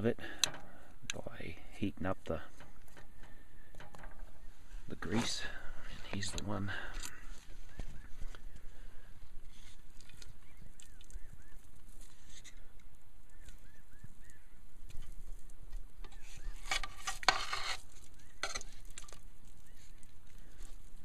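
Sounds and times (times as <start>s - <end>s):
birds chirping: 0.0s - 16.8s, 17.9s - 21.0s
knife scraping grease in metal pot: 16.1s - 19.0s.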